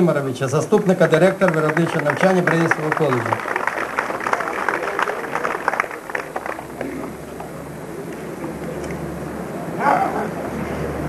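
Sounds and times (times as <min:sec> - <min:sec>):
crowd clapping: 0:00.8 - 0:07.6.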